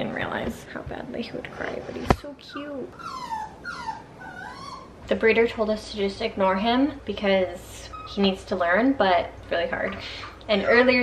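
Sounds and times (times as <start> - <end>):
puppy whining: 2.4 - 5.1, 7.8 - 8.4.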